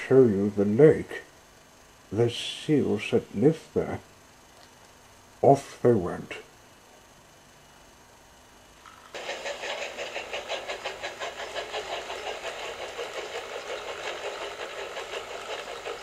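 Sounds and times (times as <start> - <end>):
model train motor whirr: 9.1 - 16.0
train wheels rattling on track: 9.1 - 16.0.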